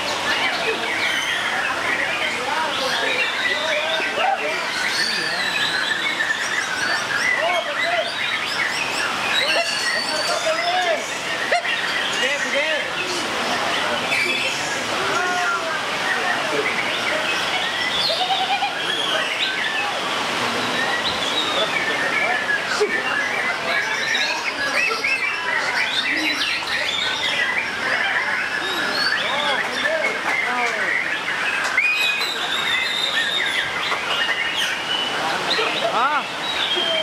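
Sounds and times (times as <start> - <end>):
songbirds whistling and chirping: 0.0 - 13.0, 13.8 - 20.0, 20.6 - 37.0.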